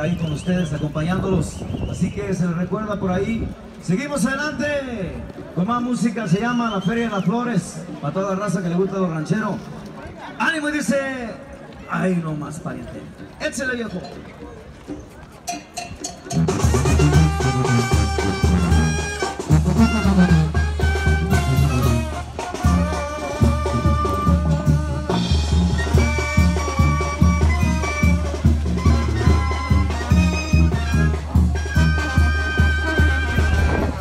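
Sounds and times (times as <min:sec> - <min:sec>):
drums: 0:13.1 - 0:34.0
brass band playing: 0:16.1 - 0:34.0
deep bass notes: 0:16.3 - 0:34.0.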